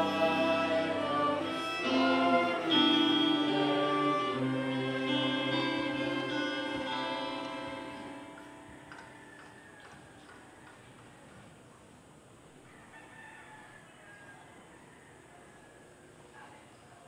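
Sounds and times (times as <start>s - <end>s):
string music: 0.0s - 8.8s
rooster crowing faintly: 8.3s - 11.5s, 12.6s - 16.5s.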